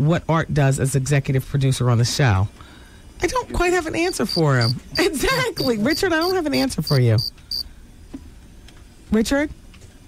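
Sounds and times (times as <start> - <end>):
studio hiss: 0.0 - 10.0
cricket chirps: 3.9 - 7.7.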